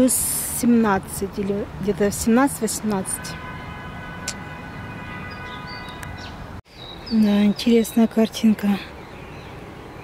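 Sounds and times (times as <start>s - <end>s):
distant traffic: 0.0s - 10.0s.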